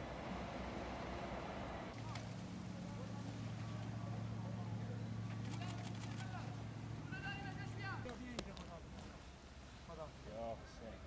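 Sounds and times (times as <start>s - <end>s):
steady low hum: 0.0s - 8.1s
men calling and shouting: 2.2s - 8.9s.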